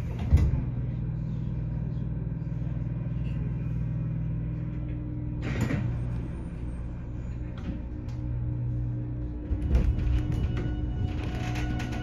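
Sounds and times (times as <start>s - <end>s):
electric train humming: 0.0s - 12.0s.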